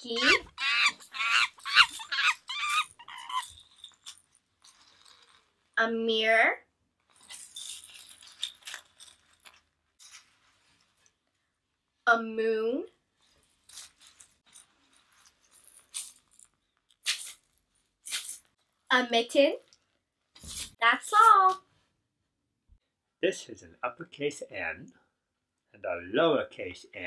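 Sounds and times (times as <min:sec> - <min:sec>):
plastic pellets rattling: 0:07.1 - 0:09.7
beanbag pellets rustling: 0:07.1 - 0:10.3, 0:13.6 - 0:18.4.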